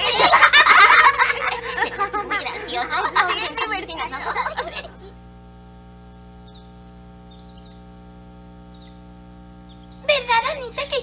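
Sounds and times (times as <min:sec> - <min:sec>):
steady low hum: 0:00.0 - 0:11.0
high bird chirps: 0:06.1 - 0:07.9, 0:08.6 - 0:10.4.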